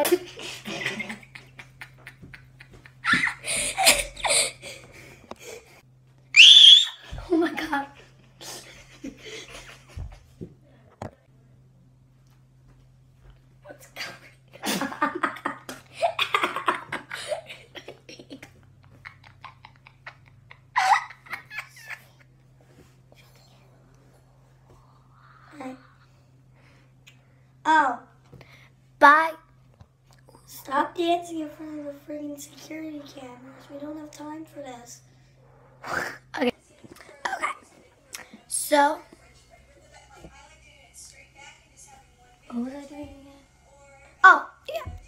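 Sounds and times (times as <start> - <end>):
girl laughing: 0.0 - 5.8, 6.4 - 10.2, 14.6 - 22.2.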